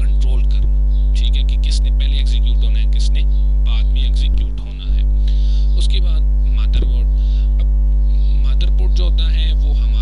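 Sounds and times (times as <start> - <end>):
electrical mains hum: 0.0 - 10.0.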